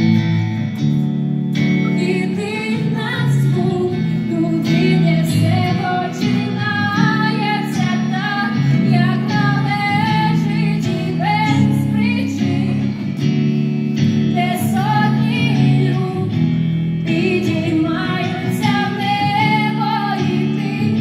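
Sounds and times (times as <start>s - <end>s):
held guitar chords: 0.0s - 21.0s
woman singing into a microphone: 1.8s - 21.0s.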